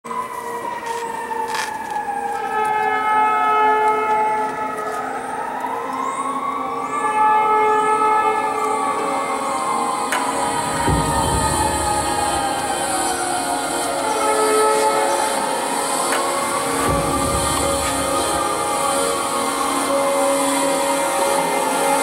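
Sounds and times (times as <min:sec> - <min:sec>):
emergency siren wailing: 0:00.0 - 0:22.0
steady held tones: 0:07.8 - 0:22.0.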